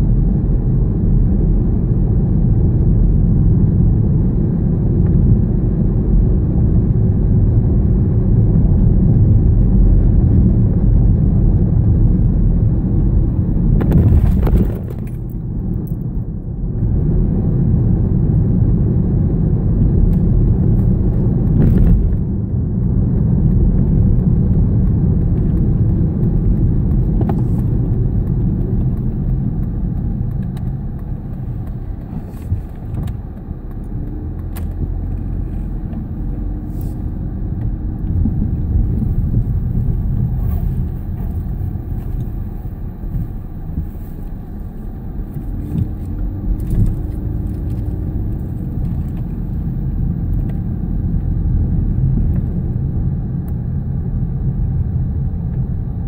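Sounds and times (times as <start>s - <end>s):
car road and engine rumble: 0.0s - 56.0s
light rattles in car: 0.1s - 17.9s, 19.0s - 56.0s.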